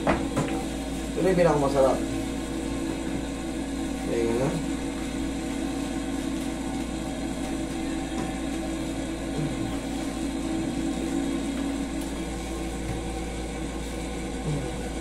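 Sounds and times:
steady mechanical hum: 0.0s - 15.0s.

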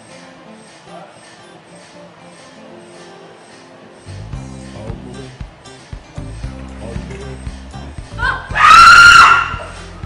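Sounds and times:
woman screaming in fright: 8.2s - 9.8s.

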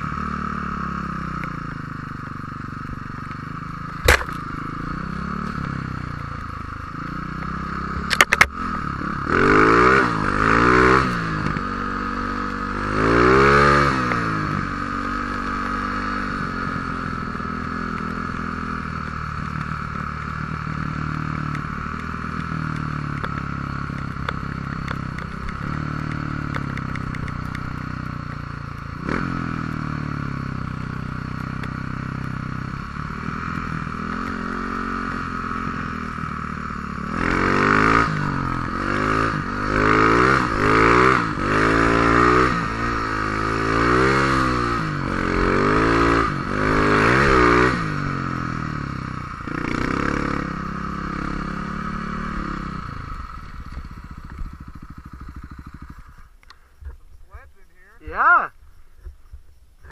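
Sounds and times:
snow bike engine revving: 0.0s - 58.5s.

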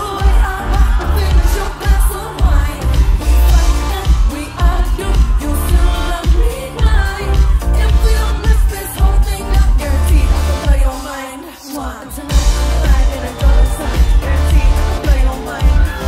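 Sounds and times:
pop band with boosted bass: 0.0s - 16.0s
woman singing into a microphone: 0.0s - 16.0s.

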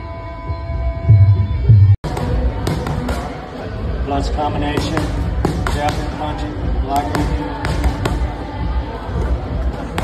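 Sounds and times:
gloved punches hitting pads: 4.7s - 6.2s, 6.9s - 8.3s.

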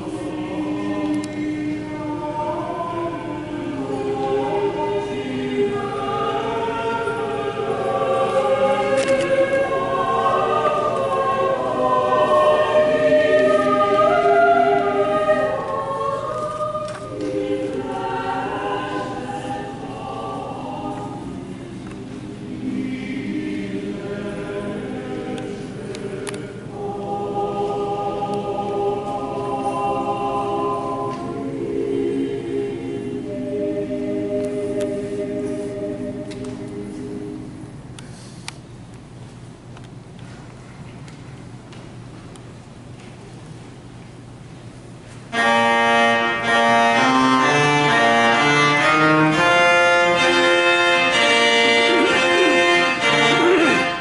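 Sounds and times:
congregation singing a hymn: 0.0s - 37.8s, 45.3s - 54.0s.

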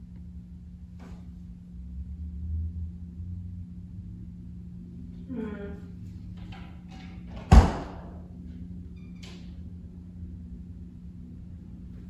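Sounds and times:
low hum: 0.0s - 12.0s
distant woman's voice: 5.2s - 5.9s.

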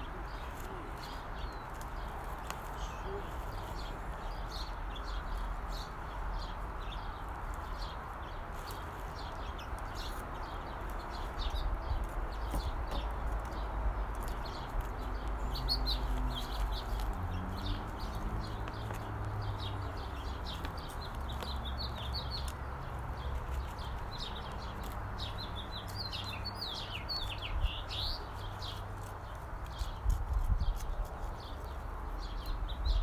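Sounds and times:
small birds chirping: 0.0s - 33.0s.

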